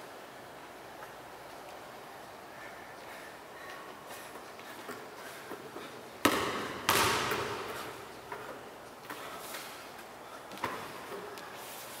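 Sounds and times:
basketball bouncing on tiles: 6.2 - 8.4.

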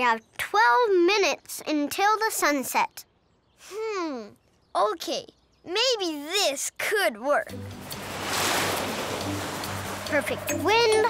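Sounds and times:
background music with low notes: 7.5 - 11.0
cartoon water splashing whoosh: 7.5 - 11.0.

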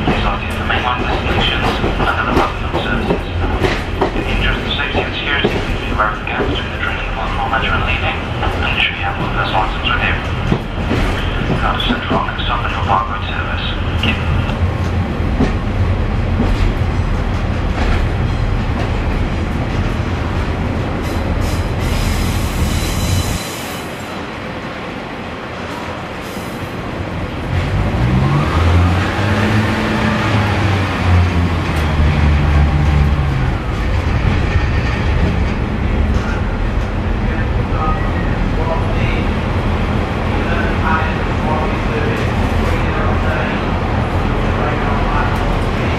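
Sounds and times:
train rumble: 0.0 - 45.9.

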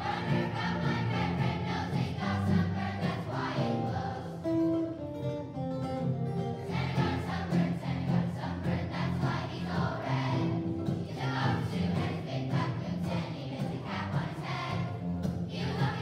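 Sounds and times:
children's choir singing: 0.0 - 4.6, 6.6 - 16.0
acoustic guitars: 0.0 - 16.0.

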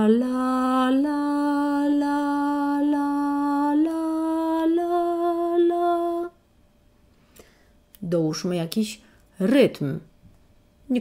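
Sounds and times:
woman singing slow melody: 0.0 - 6.4.

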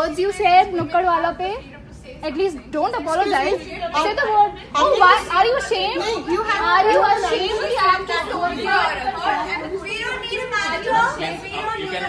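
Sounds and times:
people arguing: 2.3 - 12.0.

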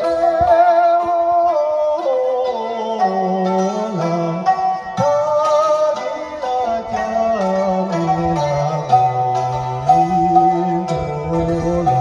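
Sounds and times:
plucked lute: 0.0 - 12.0.

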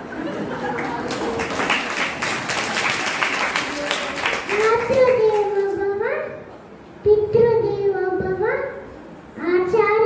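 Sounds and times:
people clapping: 0.4 - 5.8.

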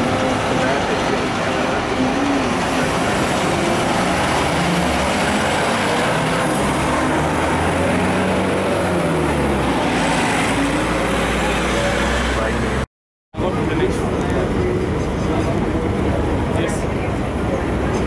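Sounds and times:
bus engine driving past: 0.0 - 12.8
street traffic: 0.0 - 18.0.

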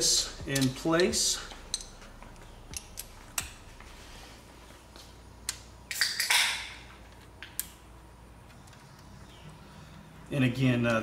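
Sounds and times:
metal clicks and clinks: 0.5 - 2.0.

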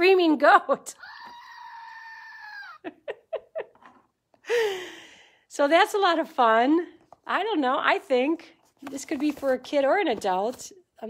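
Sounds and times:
toy goat scream: 1.0 - 2.9.

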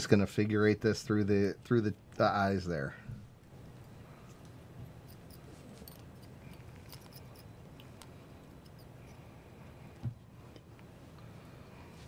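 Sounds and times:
low room hum: 0.0 - 12.0
small clicks and scratches: 4.2 - 9.8.

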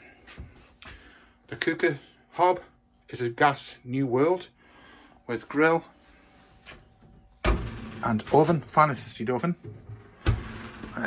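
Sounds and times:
oven door thump opening: 7.4 - 8.6, 9.8 - 11.0.

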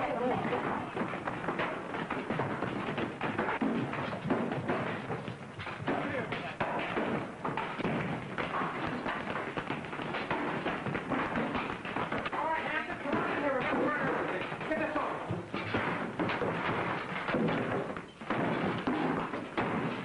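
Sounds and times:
thumps and knocks: 0.0 - 20.0.

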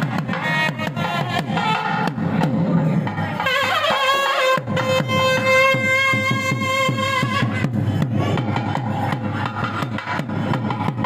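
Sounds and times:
fast drum beat: 0.0 - 11.0
violin melody: 3.4 - 7.6.

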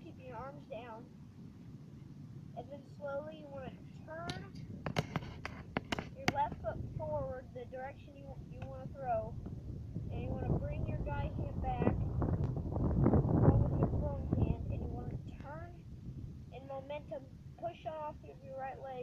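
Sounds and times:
person talking: 0.0 - 1.1, 2.6 - 4.6, 6.1 - 9.3, 10.1 - 12.0, 13.4 - 15.8, 16.6 - 19.0
wind buffeting microphone: 2.5 - 19.0.

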